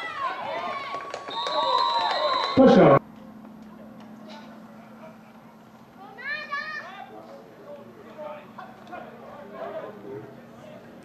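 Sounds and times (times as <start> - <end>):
distant voices of players and spectators: 0.0 - 11.0.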